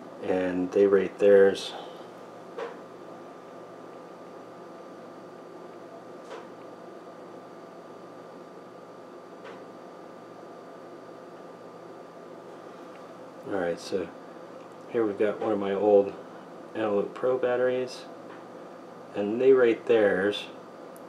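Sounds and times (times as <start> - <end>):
faint hum: 0.0 - 21.0
room tone hiss: 0.0 - 21.0.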